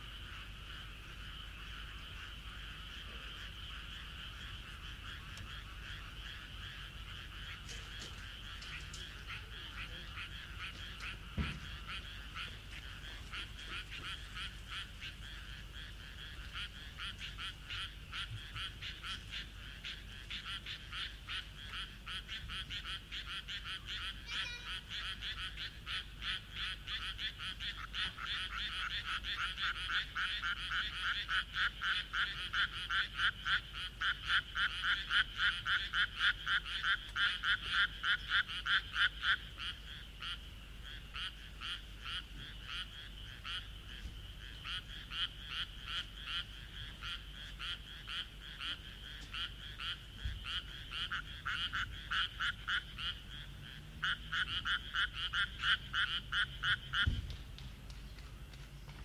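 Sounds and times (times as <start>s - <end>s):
frogs croaking: 0.0s - 59.0s.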